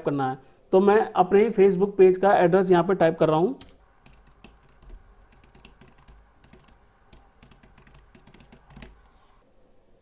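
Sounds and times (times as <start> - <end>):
keyboard typing clicks: 3.6 - 9.0.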